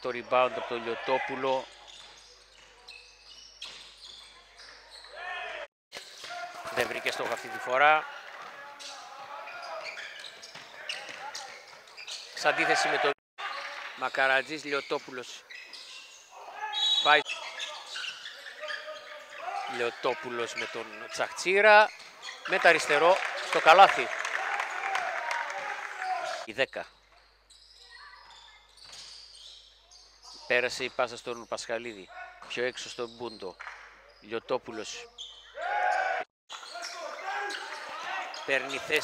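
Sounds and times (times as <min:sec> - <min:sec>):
basketball court noise with voices: 0:00.0 - 0:39.0
loud held shout: 0:12.5 - 0:13.6, 0:23.2 - 0:26.5, 0:35.6 - 0:36.3.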